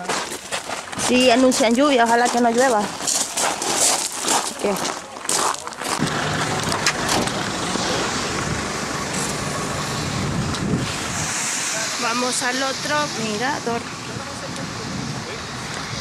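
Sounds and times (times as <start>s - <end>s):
broad rushing noise: 0.0s - 16.0s
vehicle engine humming: 5.0s - 16.0s
high hiss: 7.5s - 16.0s.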